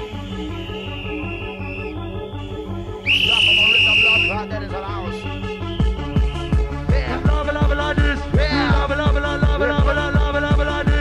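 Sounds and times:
rave dance music: 0.0s - 11.0s
shrill high whistle: 0.7s - 2.4s, 3.0s - 4.4s.

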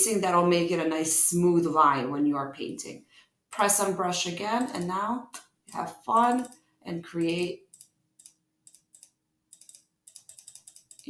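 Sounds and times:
computer mouse clicks: 6.2s - 6.6s, 7.7s - 11.0s.

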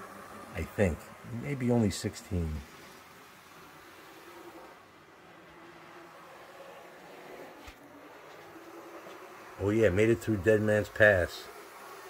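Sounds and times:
model locomotive whirring: 0.0s - 12.0s.

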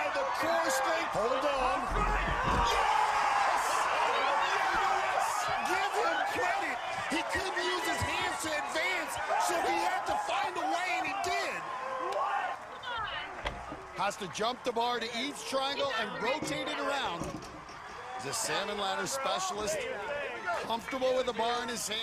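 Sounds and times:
people yelling and cheering: 0.0s - 22.0s.

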